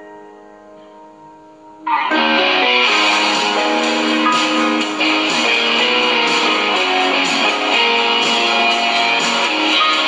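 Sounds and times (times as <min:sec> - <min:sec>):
held chord notes: 0:00.0 - 0:10.0.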